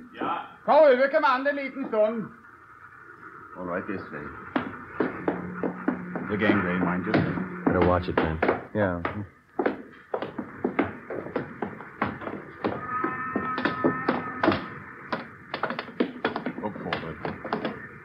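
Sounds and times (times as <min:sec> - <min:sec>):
faint held tone: 0:04.0 - 0:08.4
footsteps on gangway: 0:04.0 - 0:18.0.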